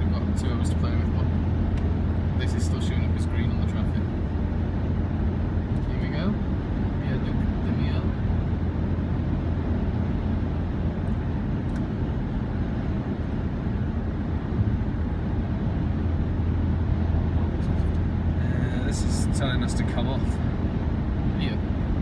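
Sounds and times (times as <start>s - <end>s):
road and engine rumble: 0.0s - 22.0s.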